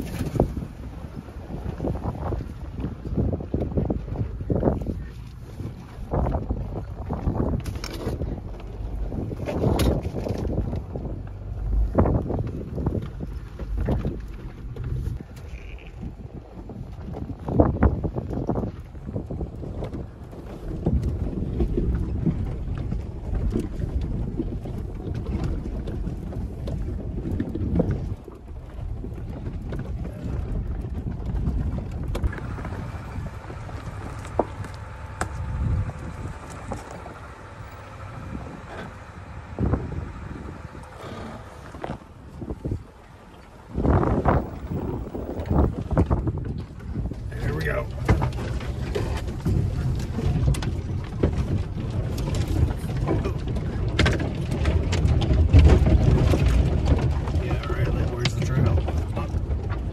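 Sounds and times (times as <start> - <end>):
pickup engine and tyres rumbling: 0.0 - 59.9
knocks and jolts from rough ground: 1.9 - 42.9, 43.7 - 59.9.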